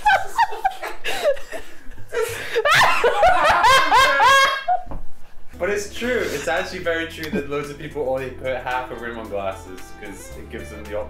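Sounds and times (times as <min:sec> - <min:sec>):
woman laughing loudly: 0:00.0 - 0:04.9.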